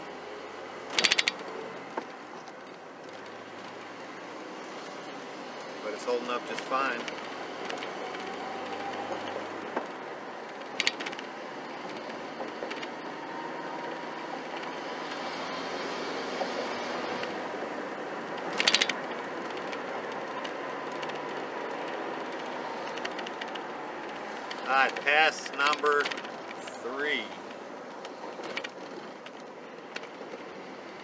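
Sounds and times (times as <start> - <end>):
road and tyre noise: 0.0 - 31.0
truck engine pulling: 16.4 - 31.0.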